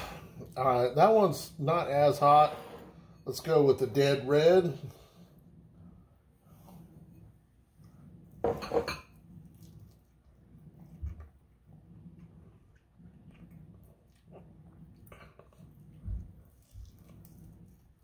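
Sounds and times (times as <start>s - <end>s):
chewing and mouth sounds: 12.2s - 18.0s.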